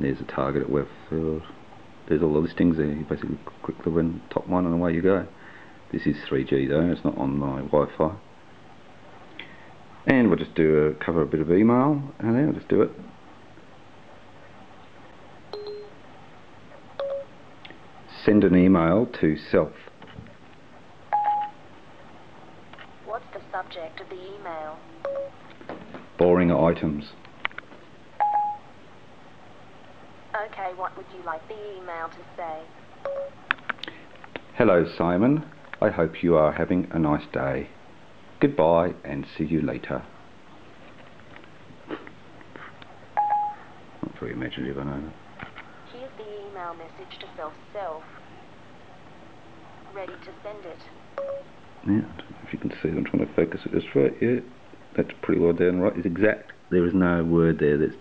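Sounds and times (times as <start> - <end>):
low steady hiss: 0.0 - 58.0
short electronic beeps: 15.5 - 15.9, 17.0 - 17.3, 25.0 - 25.4, 28.2 - 28.6, 33.0 - 33.4, 43.2 - 43.6, 51.2 - 51.5
short electronic beep: 15.6 - 15.9.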